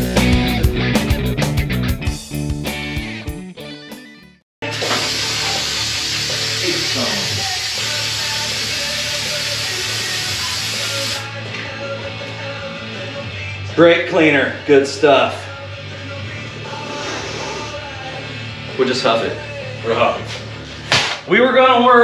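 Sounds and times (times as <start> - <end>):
rock music with guitar: 0.0 - 21.2
aerosol can spraying: 4.7 - 11.3.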